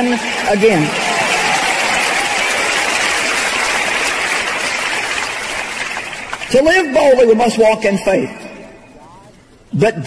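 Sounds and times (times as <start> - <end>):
audience applauding: 0.0 - 7.2.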